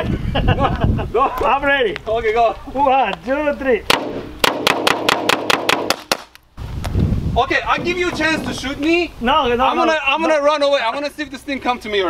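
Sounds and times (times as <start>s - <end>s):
air rifle rapid shots: 3.9s - 6.3s
balls striking plastic shield: 3.9s - 6.3s.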